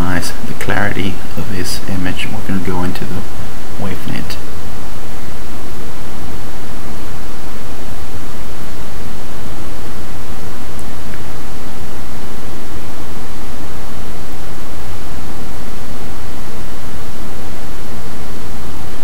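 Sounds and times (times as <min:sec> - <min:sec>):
recording noise hiss: 0:00.0 - 0:19.0.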